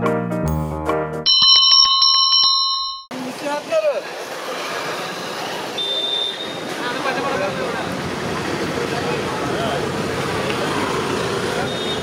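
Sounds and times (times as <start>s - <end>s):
high steady tone: 1.3s - 3.1s
small bell trilling: 1.3s - 3.1s
busy street noise: 1.4s - 12.0s.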